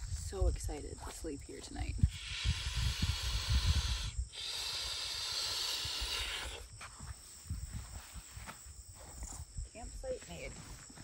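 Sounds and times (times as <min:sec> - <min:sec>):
steady hissing: 0:02.0 - 0:07.5.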